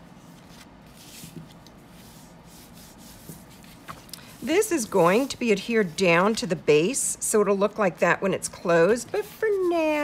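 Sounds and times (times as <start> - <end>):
bone folder rubbing paper: 0.9 - 3.9.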